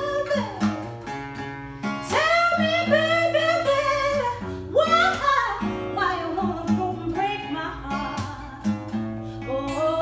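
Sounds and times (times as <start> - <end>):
woman singing a soul ballad: 0.0 - 0.9, 1.9 - 10.0
acoustic guitar chords: 0.0 - 10.0.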